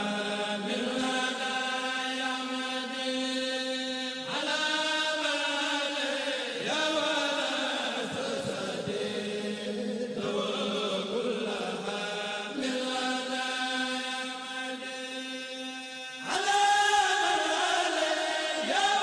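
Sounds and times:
male voices chanting: 0:00.0 - 0:19.0.

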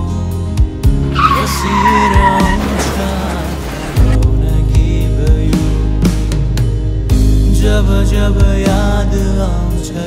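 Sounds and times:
song music: 0:00.8 - 0:08.0
car tyres screeching: 0:01.0 - 0:04.2.

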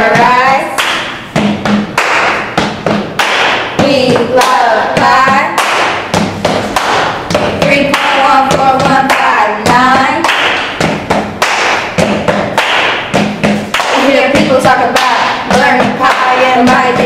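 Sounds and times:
rhythmic thumps and claps: 0:00.0 - 0:17.0.

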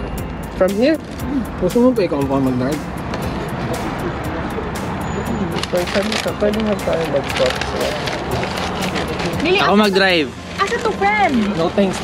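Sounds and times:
background music: 0:00.0 - 0:12.0
traffic hum: 0:00.0 - 0:12.0.

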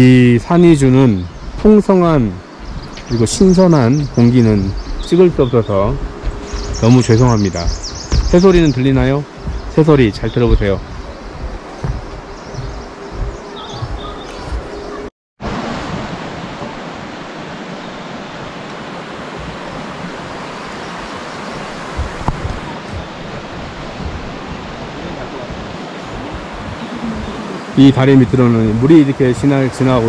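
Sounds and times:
steady low hum: 0:00.0 - 0:15.1
stream rushing: 0:00.0 - 0:30.0
faint high bird calls: 0:02.6 - 0:15.1.

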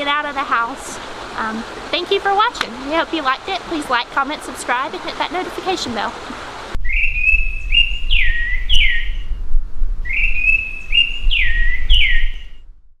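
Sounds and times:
low rumble: 0:06.7 - 0:13.0
bird whistling call: 0:06.8 - 0:09.4, 0:10.0 - 0:12.6.

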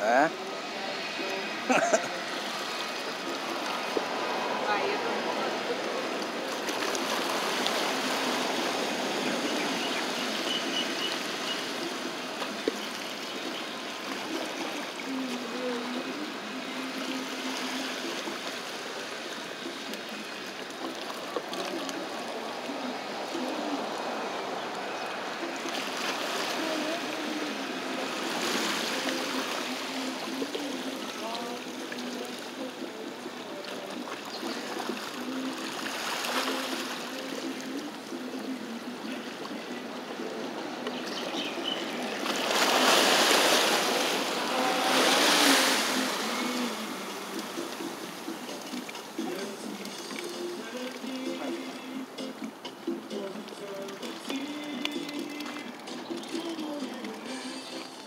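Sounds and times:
waves washing against rocks: 0:00.0 - 0:40.9, 0:41.6 - 0:51.2.

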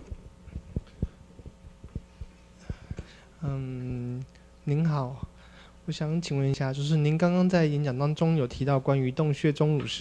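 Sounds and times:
microphone being handled: 0:00.0 - 0:03.2
low sound system hum: 0:00.0 - 0:10.0.

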